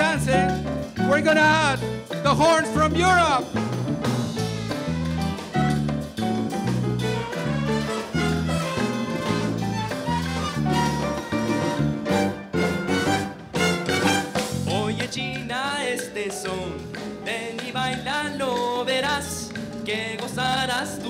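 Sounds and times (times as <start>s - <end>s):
salsa band playing: 0.0s - 21.0s.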